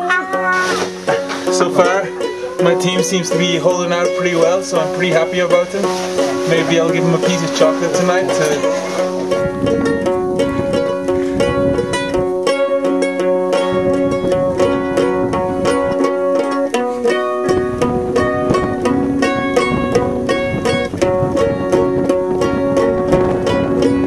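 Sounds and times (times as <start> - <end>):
plucked string tune: 0.0 - 24.0.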